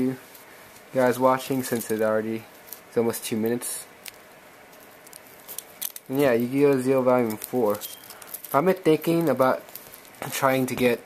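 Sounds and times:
plastic wrap crinkling: 0.4 - 11.0.

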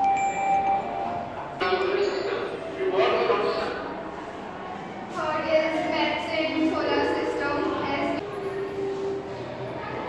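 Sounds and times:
chime-like ringing tones: 0.0 - 2.7.

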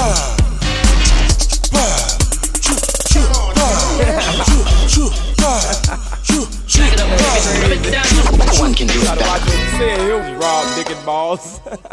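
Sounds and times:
heavy bass beat: 0.0 - 10.0
person rapping: 1.6 - 11.4.

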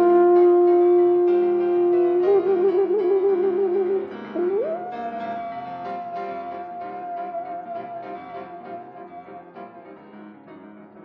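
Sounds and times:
soft piano: 0.0 - 11.0.

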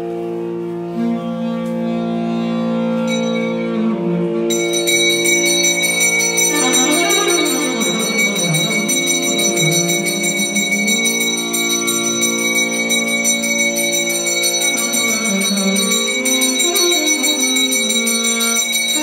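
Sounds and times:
melody in long notes: 0.0 - 19.0
hand bell ringing: 4.5 - 19.0.

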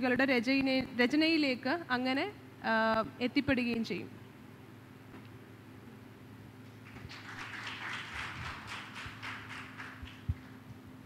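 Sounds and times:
audience applauding: 6.8 - 10.6.

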